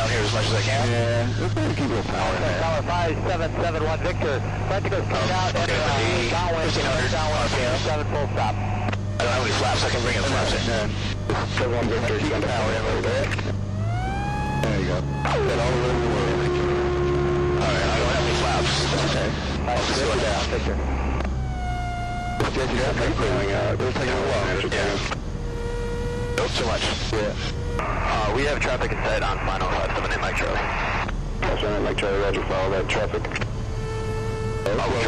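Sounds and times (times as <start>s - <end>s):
small plane engine drone: 0.0s - 35.0s
stall warning tone: 8.9s - 35.0s.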